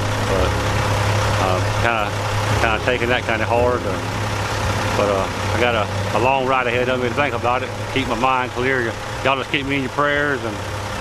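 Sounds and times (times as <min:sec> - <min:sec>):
truck engine idling: 0:00.0 - 0:11.0
man speaking: 0:00.3 - 0:00.6, 0:01.4 - 0:04.0, 0:05.0 - 0:10.6.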